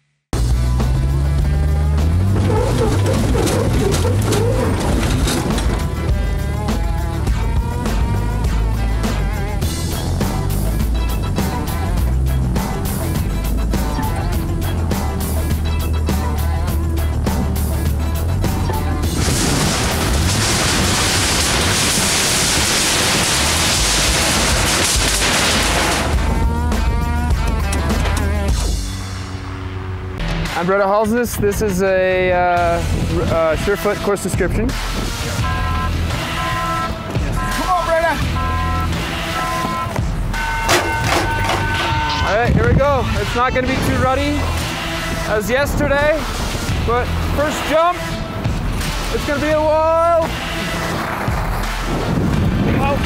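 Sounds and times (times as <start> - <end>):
buggy engine under load: 0.4 - 30.3, 35.4 - 53.0
music playing: 0.4 - 53.0
loud metal crash: 2.2 - 6.3, 19.0 - 26.6, 40.4 - 42.4.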